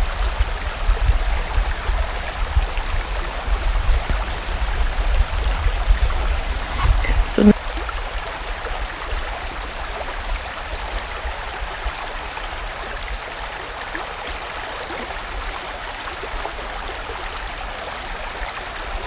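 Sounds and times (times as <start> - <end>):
stream flowing: 0.0 - 19.0.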